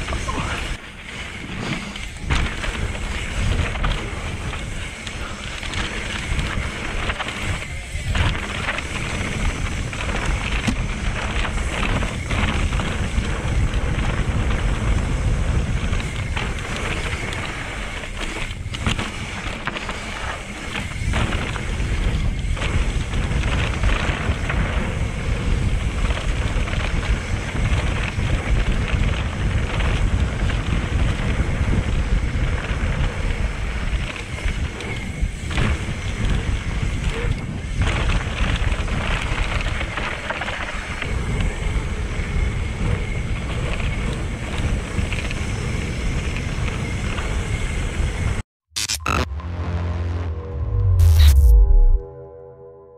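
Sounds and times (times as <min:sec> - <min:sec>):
bike rattling: 0:00.0 - 0:48.4
tyres rolling on dirt: 0:00.0 - 0:48.4
wind rush on microphone: 0:00.0 - 0:48.4.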